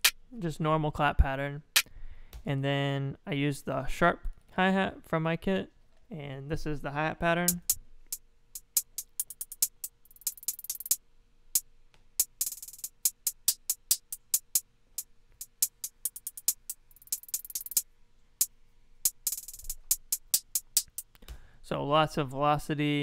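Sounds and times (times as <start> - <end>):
hi-hat ticks and rolls: 7.5 - 17.8, 18.4 - 21.2.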